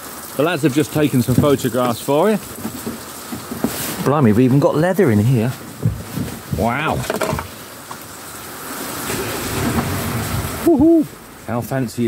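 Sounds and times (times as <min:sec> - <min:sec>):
vehicle rushing noise: 0:08.5 - 0:11.4.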